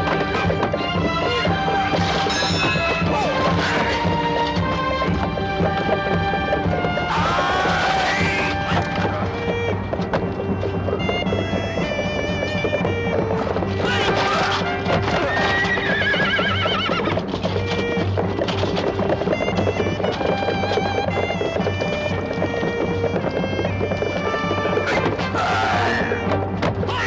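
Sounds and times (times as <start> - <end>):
dramatic soundtrack music: 0.0 - 23.4, 24.2 - 27.0
hooves clattering: 0.0 - 27.0
horses neighing: 0.0 - 27.0.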